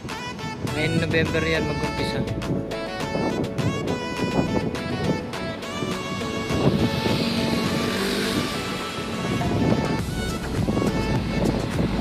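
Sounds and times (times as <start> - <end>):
background music: 0.0 - 12.0
motor vehicle passing: 5.0 - 12.0.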